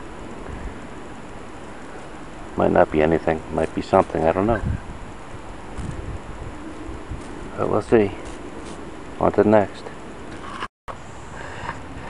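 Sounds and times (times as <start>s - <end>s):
wind buffeting microphone: 3.6s - 9.2s.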